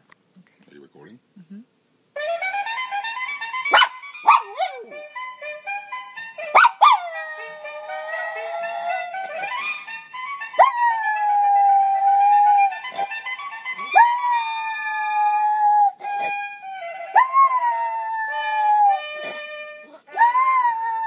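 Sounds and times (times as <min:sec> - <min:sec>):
trumpet fanfare: 0:02.2 - 0:07.2
dog howling: 0:06.6 - 0:09.2, 0:10.6 - 0:12.8, 0:13.8 - 0:16.0, 0:17.1 - 0:21.0.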